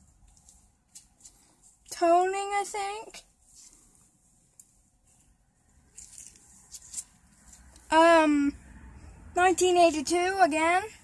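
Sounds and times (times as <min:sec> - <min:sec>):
nitrile gloves rustling: 0:00.0 - 0:07.9
coins scuffing on carpet: 0:05.9 - 0:07.7.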